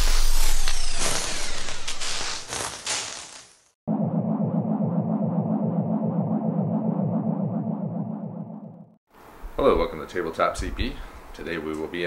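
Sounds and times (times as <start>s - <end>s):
pulsing low rumbling buzz: 3.9s - 9.0s.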